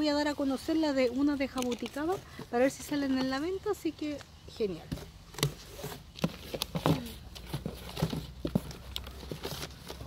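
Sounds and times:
plastic bottles clicking and knocking: 0.7s - 3.5s, 4.2s - 10.0s.

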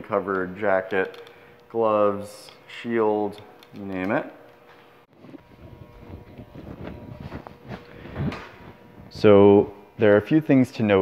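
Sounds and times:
rustling and handling noises: 5.2s - 8.8s.

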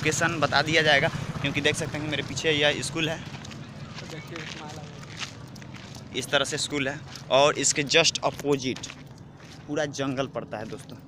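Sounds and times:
footsteps walking: 3.0s - 11.0s.

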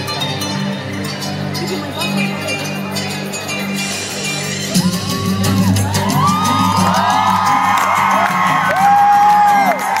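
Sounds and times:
loud amplified dance music: 3.7s - 10.0s.

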